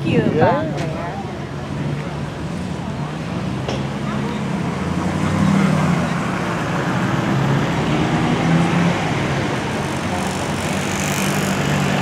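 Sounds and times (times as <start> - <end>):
old car engines driving past: 1.3 - 12.0.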